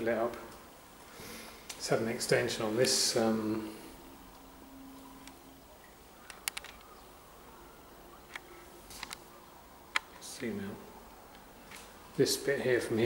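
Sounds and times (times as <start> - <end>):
faint hum: 0.0 - 13.0
small sharp clicks: 6.2 - 6.9, 9.9 - 10.5.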